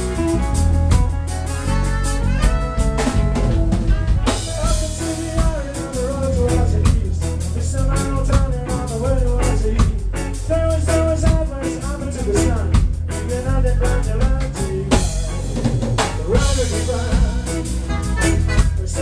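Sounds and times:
bass and guitar: 0:00.0 - 0:19.0
drum kit with rimshots: 0:00.0 - 0:19.0
saxophone and trombone melody: 0:00.0 - 0:19.0.

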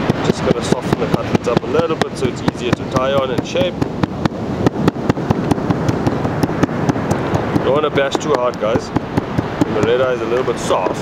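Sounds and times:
mallet pounding on cutting board: 0:00.0 - 0:10.0.

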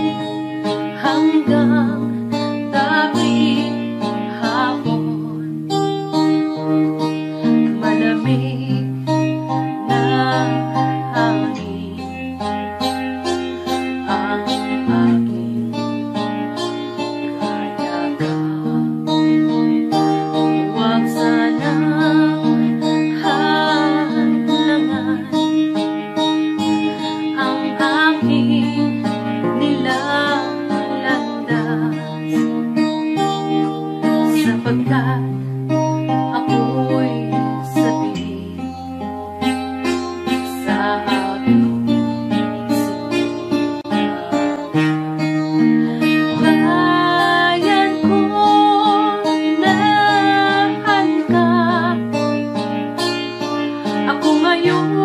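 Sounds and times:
worship band guitar: 0:00.0 - 0:55.0.

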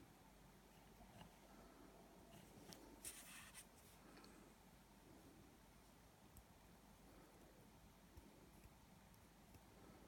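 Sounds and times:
faint short scratching: 0:02.3 - 0:04.0.

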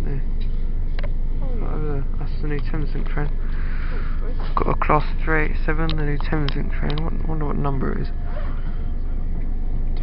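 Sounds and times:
electric train running rumble: 0:00.0 - 0:10.0.

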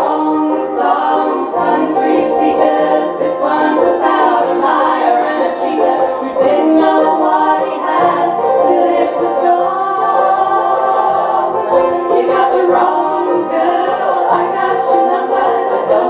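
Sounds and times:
acoustic guitar: 0:00.0 - 0:16.0
mandolin: 0:00.0 - 0:16.0
strummed banjo: 0:00.0 - 0:16.0
women singing in harmony: 0:00.0 - 0:16.0.

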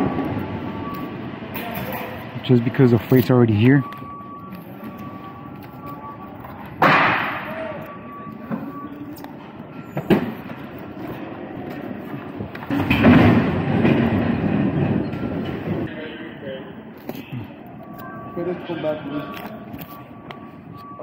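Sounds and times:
forklift rumbling: 0:00.0 - 0:21.0.

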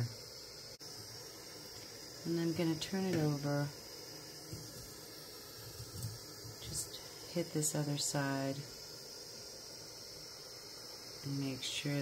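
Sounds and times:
torch flame hissing: 0:00.0 - 0:12.0.

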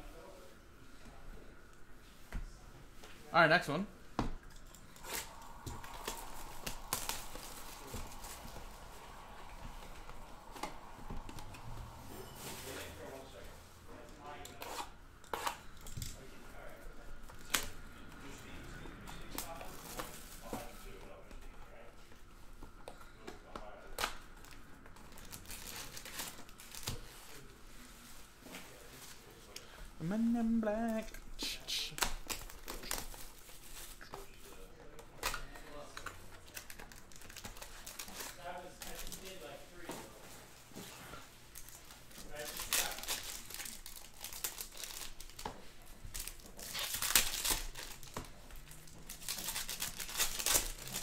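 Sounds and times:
plastic wrapping tearing and crinkling: 0:04.5 - 0:16.7, 0:19.2 - 0:21.8, 0:23.6 - 0:29.3, 0:31.8 - 0:40.2, 0:41.5 - 0:51.0.

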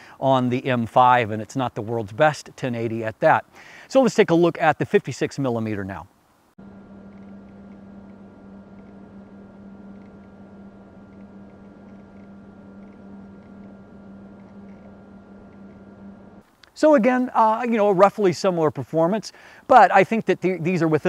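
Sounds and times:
low hum with faint hiss: 0:00.0 - 0:21.0.

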